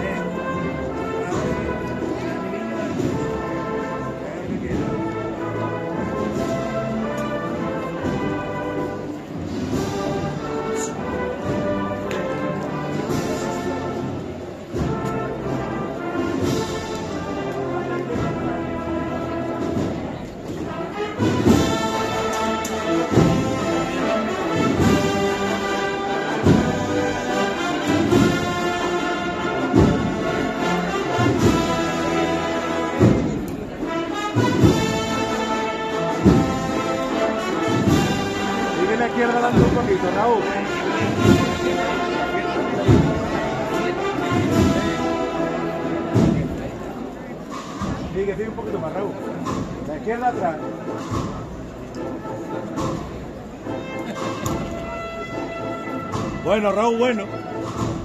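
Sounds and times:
brass band playing a march: 0.0 - 58.0
heavy drum beat: 12.6 - 46.7.

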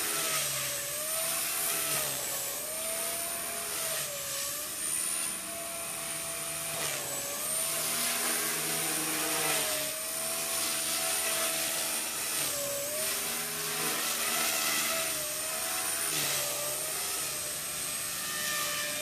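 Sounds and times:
model helicopter rotor whine: 0.0 - 19.0.

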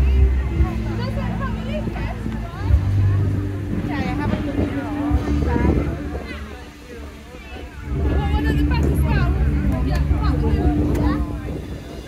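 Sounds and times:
people talking: 0.0 - 12.0.

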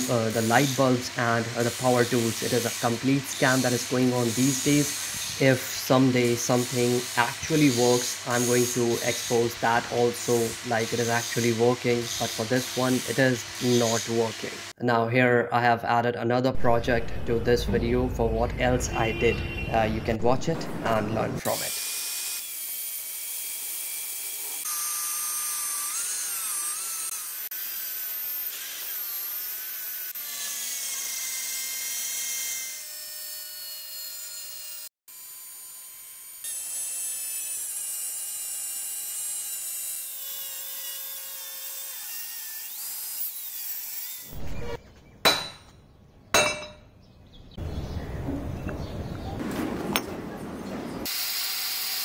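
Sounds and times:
angle grinder cutting steel: 0.0 - 14.8, 21.4 - 44.8, 51.0 - 52.0.

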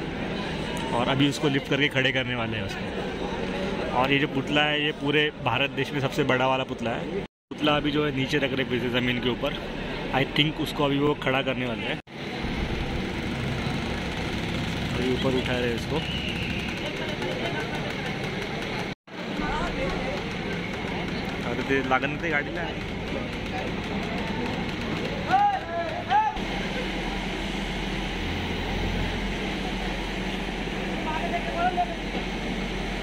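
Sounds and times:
deep drone: 12.2 - 17.0
crane diesel engine running: 12.2 - 33.0.

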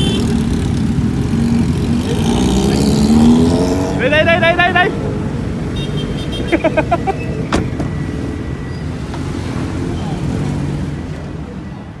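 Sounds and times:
city street traffic rumble: 0.0 - 12.0.

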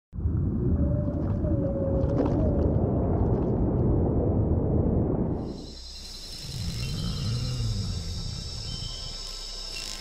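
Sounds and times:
deep underwater rumble: 0.1 - 9.6
long wavering tone: 5.5 - 10.0.

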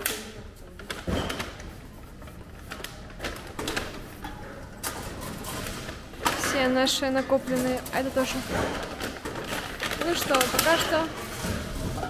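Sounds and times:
machine mechanism clicking and clattering: 0.0 - 12.0.

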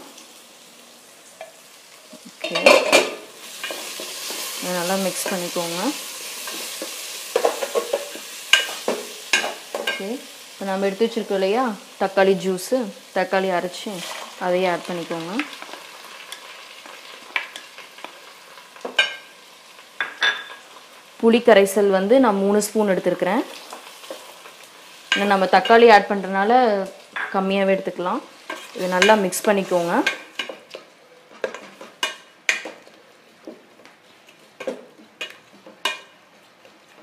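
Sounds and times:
vegetables sizzling in oil: 0.0 - 37.0.

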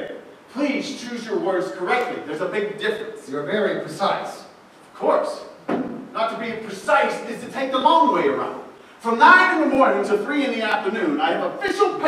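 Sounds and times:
sharp knock: 5.7 - 6.1.

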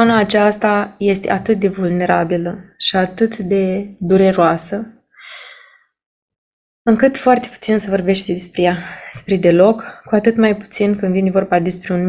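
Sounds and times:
woman speaking: 0.0 - 5.6, 6.9 - 12.0
woman's soft breath: 5.2 - 5.9.

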